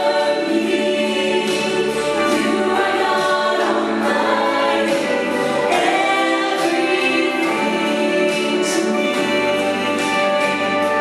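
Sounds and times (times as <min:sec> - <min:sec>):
vocal group singing in harmony: 0:00.0 - 0:11.0.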